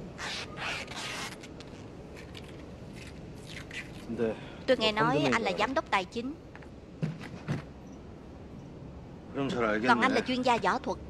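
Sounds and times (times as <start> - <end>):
tape ripping off roll: 0.2 - 4.1.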